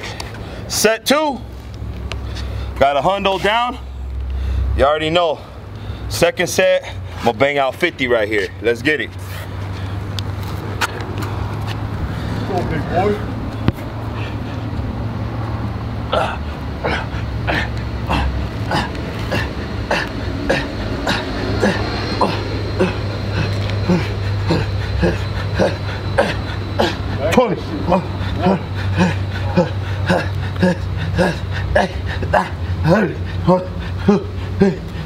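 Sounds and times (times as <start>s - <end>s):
steady low hum: 0.0s - 35.0s
man breathing hard and grunting: 3.4s - 7.2s, 10.8s - 35.0s.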